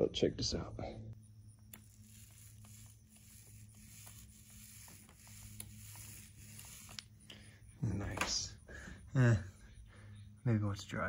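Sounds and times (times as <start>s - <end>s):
steady low hum: 0.3s - 11.0s
paint roller crackling: 1.7s - 7.4s.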